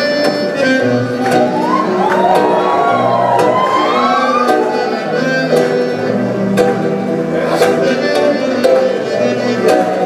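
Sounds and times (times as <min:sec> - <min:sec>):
accordion: 0:00.0 - 0:10.0
acoustic guitars: 0:00.0 - 0:10.0
high sliding wail: 0:01.2 - 0:05.5.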